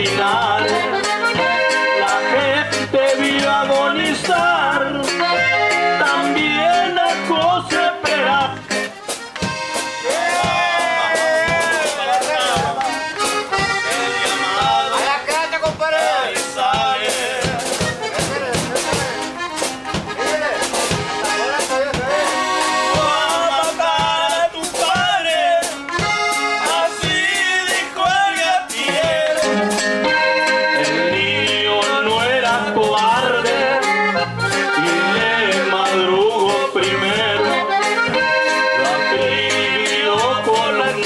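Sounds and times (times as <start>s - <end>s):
accordion melody: 0.0s - 41.0s
guitar accompaniment: 0.0s - 41.0s
steady beat: 0.0s - 41.0s.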